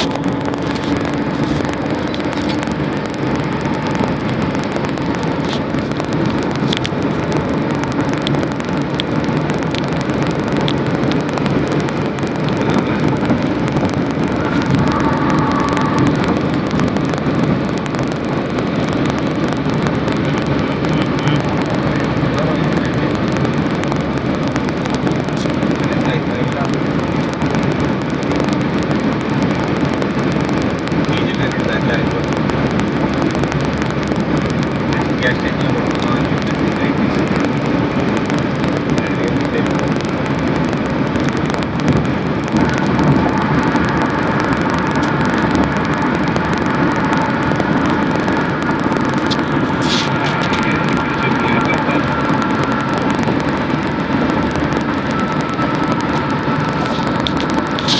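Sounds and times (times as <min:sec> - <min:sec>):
road and engine noise in cabin: 0:00.0 - 0:57.9.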